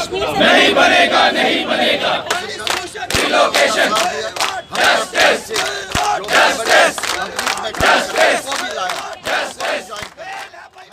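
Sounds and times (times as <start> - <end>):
crowd shouting a slogan: 0.0 - 10.9.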